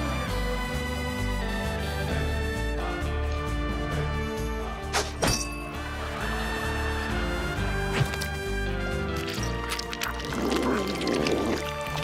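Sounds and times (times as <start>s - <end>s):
background music with sustained tones: 0.0s - 12.0s
person hawking up spit: 9.4s - 12.0s.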